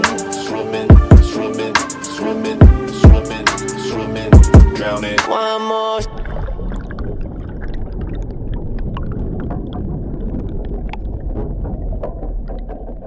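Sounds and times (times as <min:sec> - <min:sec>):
bubbles popping: 0:06.0 - 0:13.0
muffled underwater rumble: 0:06.0 - 0:13.0.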